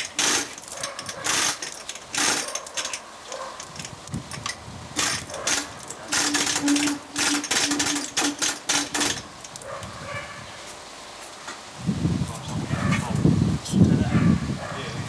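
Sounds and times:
chain hoist clicking and rattling: 0.0 - 9.7.

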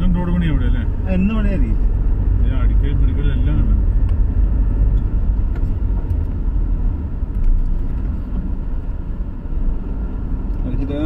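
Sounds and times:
car driving on rough road: 0.0 - 11.0.

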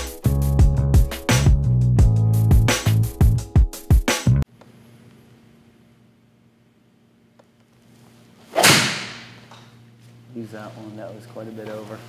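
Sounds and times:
golf club swish: 8.4 - 9.5
golf club striking ball: 8.6 - 9.6.

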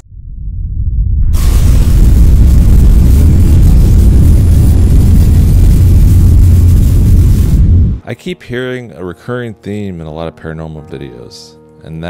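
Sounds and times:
deep rumble: 0.0 - 8.0
crackling hiss: 1.4 - 8.0.

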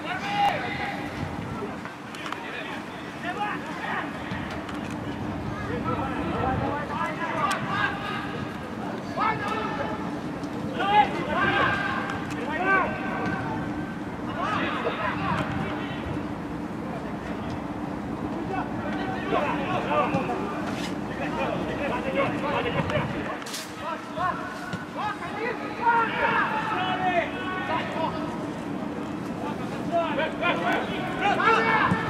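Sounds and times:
steady low hum: 0.0 - 23.4
players shouting: 0.0 - 28.8, 29.4 - 32.0.

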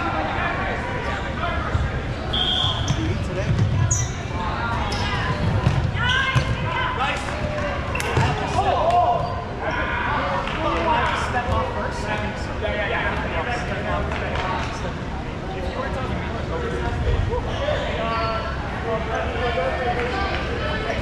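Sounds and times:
balls smacking on gym floor: 5.5 - 6.6, 7.3 - 9.0.

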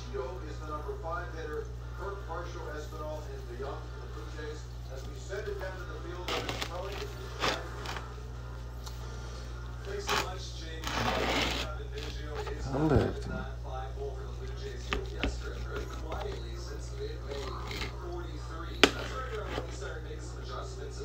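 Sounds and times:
baseball game tv broadcast: 0.0 - 21.0
steady low hum: 0.0 - 21.0
knife cutting on cutting board: 10.0 - 13.1, 17.3 - 18.0, 18.7 - 19.8.

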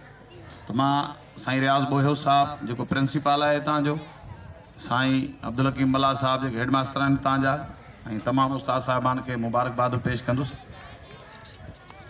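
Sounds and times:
distant voices: 0.0 - 12.0
man speaking: 4.8 - 10.6.

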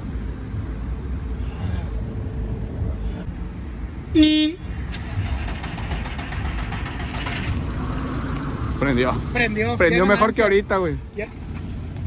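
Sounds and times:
car engine starting and running: 2.4 - 12.0.

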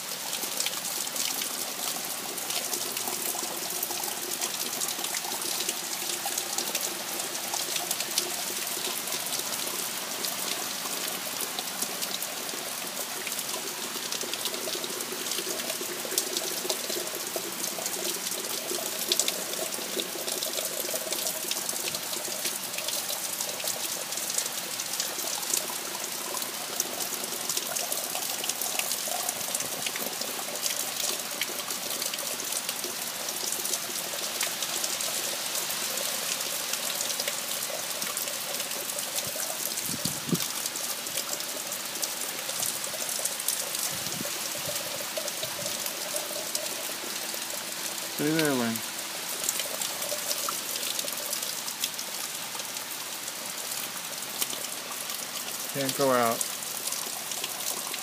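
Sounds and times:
heavy rain falling: 0.0 - 58.0.

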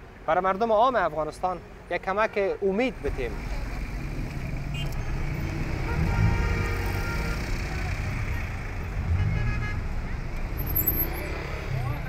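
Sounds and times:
traffic engines rumbling: 0.0 - 12.0.

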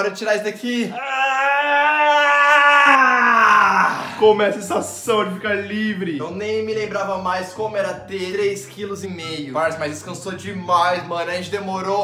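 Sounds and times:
man's long loud yell: 0.9 - 4.2.

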